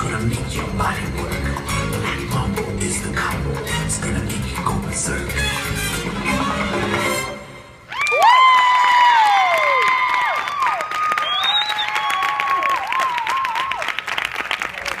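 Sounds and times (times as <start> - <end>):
dance music: 0.0 - 7.8
high-pitched whoops: 7.9 - 13.9
audience applause: 7.9 - 15.0
whistle: 10.4 - 12.6.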